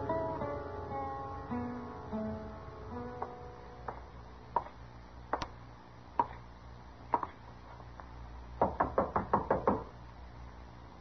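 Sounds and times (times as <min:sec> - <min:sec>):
knuckles knocking on wooden door: 0:08.6 - 0:09.9.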